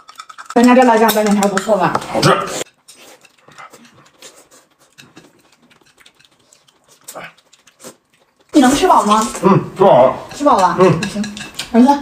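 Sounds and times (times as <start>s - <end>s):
man chewing and slurping noodles: 2.0s - 10.4s.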